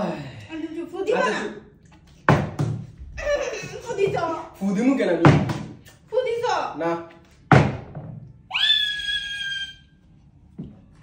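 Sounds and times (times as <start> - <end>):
high-pitched scream: 8.5 - 10.0.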